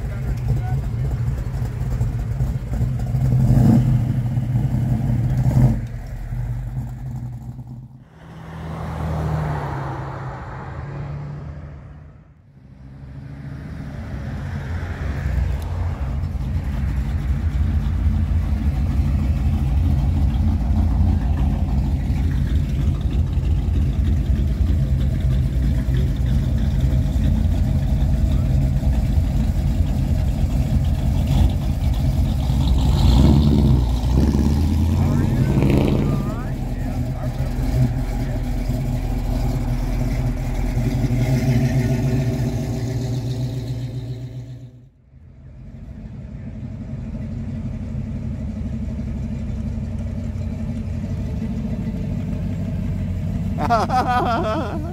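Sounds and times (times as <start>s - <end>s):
car engine idling: 0.0s - 11.1s, 11.7s - 54.9s
voices: 34.8s - 40.4s, 53.6s - 54.9s.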